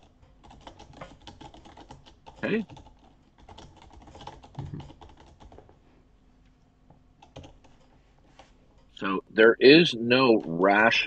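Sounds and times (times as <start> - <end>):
typing on computer keyboard: 0.0 - 5.7, 7.2 - 8.5.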